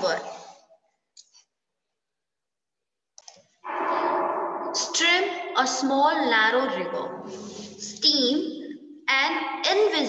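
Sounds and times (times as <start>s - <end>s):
computer mouse clicks: 3.2s - 3.4s.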